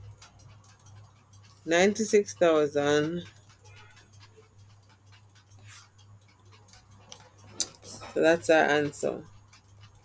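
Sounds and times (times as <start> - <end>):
computer keyboard clicks: 0.0 - 1.7, 3.2 - 8.0.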